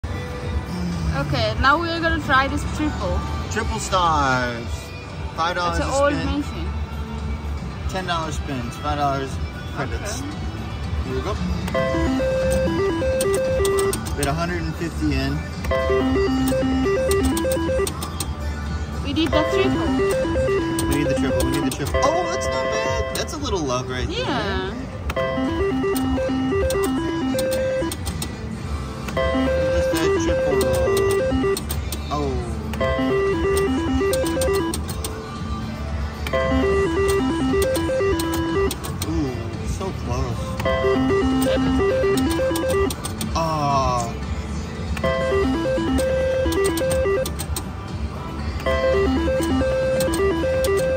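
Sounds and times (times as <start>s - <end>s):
slot machine electronic tune: 11.7s - 14.3s, 15.7s - 18.2s, 19.1s - 24.4s, 25.1s - 28.1s, 29.1s - 32.2s, 32.8s - 35.0s, 36.3s - 39.0s, 40.6s - 43.9s, 45.0s - 47.6s, 48.6s - 50.9s
casino background hum: 11.7s - 14.4s, 15.7s - 18.3s, 19.3s - 28.0s, 32.8s - 34.9s, 40.6s - 43.9s, 45.0s - 47.6s, 48.6s - 50.9s
sharp clicks: 16.4s - 18.4s, 25.9s - 28.4s, 41.4s - 43.4s.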